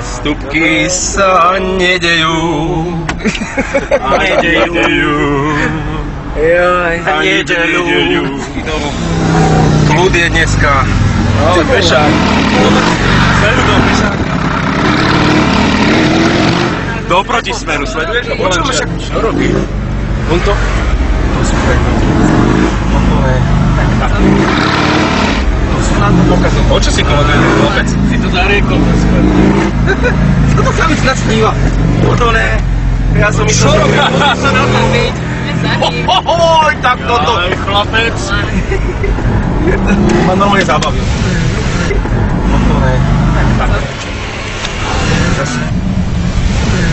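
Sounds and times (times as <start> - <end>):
loud talking: 0.0 - 45.9
vehicle engine and road noise: 0.0 - 46.9
voices: 0.0 - 46.9.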